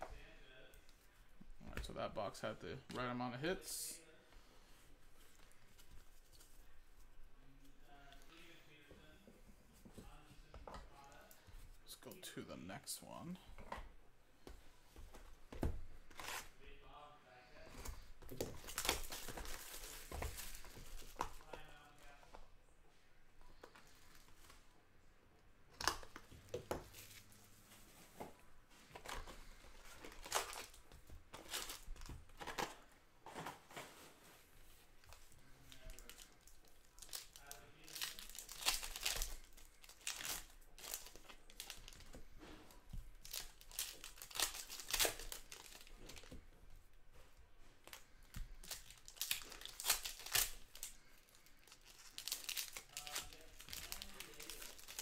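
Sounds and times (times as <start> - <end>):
foil wrappers tearing and crinkling: 35.7 - 42.0, 43.2 - 46.3, 48.6 - 55.0.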